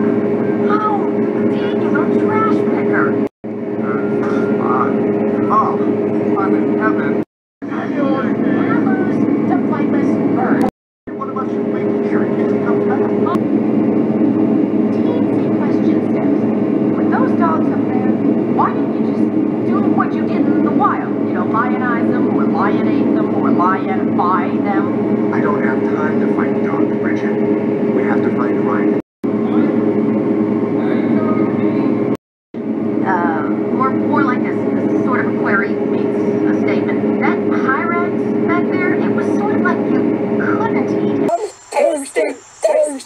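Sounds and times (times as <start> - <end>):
faint voices: 0.0 - 13.5, 14.8 - 30.0, 30.7 - 32.1, 33.0 - 43.0
low rumbling drone: 0.0 - 41.3.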